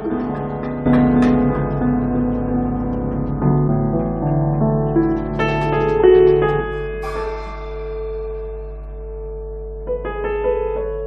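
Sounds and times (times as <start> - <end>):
piano chord ringing: 0.0 - 11.0
cymbal crash shimmering: 7.0 - 9.9.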